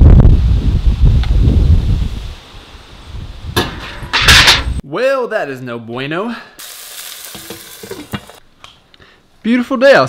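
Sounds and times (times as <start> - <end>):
chicken sizzling in a pan: 6.6 - 8.4.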